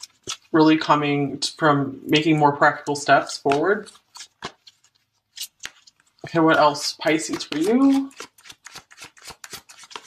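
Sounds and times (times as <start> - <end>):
cards being shuffled: 0.0 - 0.6, 3.4 - 10.0.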